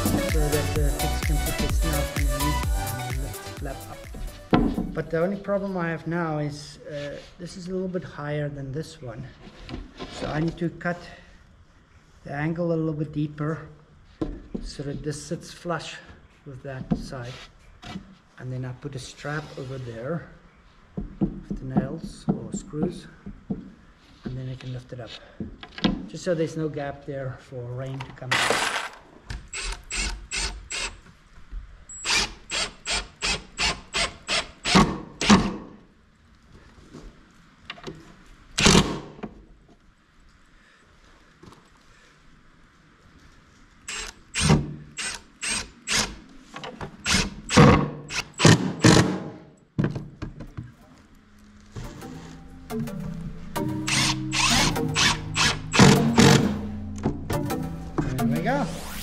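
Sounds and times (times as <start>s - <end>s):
background music: 0.0s - 5.8s, 51.0s - 59.0s
drill driving screws into wood: 28.3s - 31.0s, 31.9s - 35.7s, 38.6s - 39.1s, 43.9s - 46.2s, 47.0s - 49.4s, 53.8s - 56.6s.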